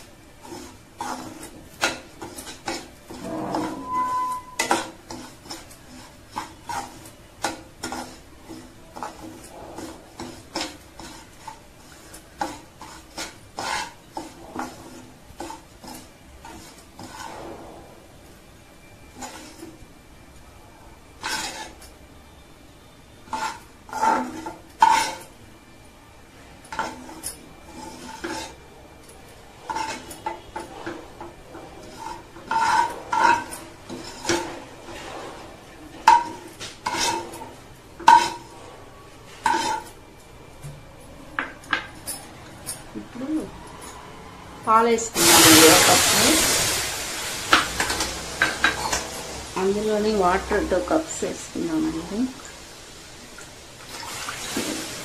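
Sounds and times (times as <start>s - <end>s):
spoon scraping metal pan: 0.0s - 19.9s, 21.1s - 22.1s, 23.1s - 25.4s, 26.6s - 40.0s, 44.7s - 52.3s.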